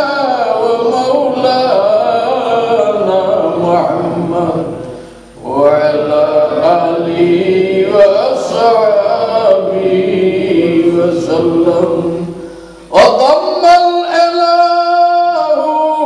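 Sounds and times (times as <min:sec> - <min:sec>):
man chanting: 0:00.0 - 0:16.0.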